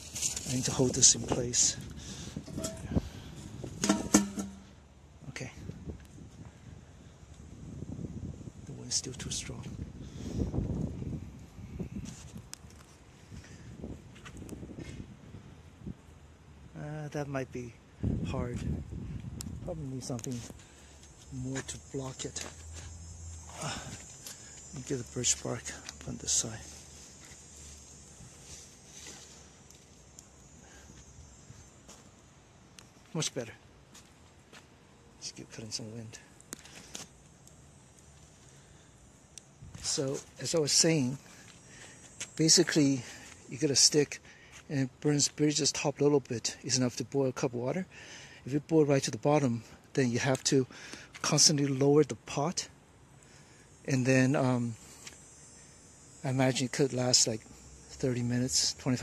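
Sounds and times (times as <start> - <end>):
knocks with low ring: 3.8 - 4.7.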